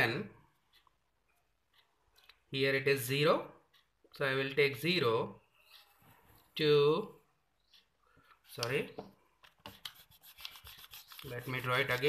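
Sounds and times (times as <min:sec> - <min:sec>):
eraser scrubbing on paper: 0:09.7 - 0:12.0.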